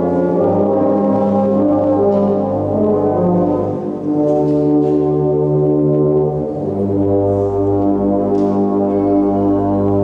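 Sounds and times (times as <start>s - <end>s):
brass band playing chords: 0.0s - 10.0s.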